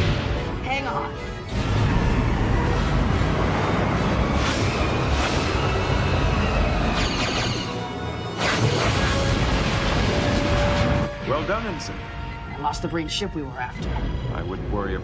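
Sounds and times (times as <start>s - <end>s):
dramatic orchestral score: 0.0s - 15.0s
explosions: 8.4s - 11.4s.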